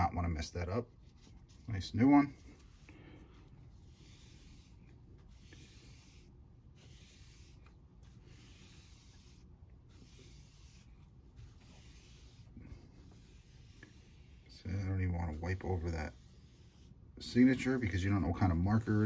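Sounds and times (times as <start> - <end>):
sponge wiping paper: 0.0 - 19.0.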